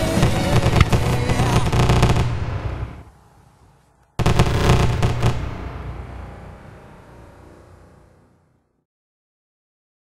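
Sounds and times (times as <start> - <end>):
music: 0.0 - 2.4
fireworks bursts and crackling: 0.0 - 3.1, 4.2 - 6.1.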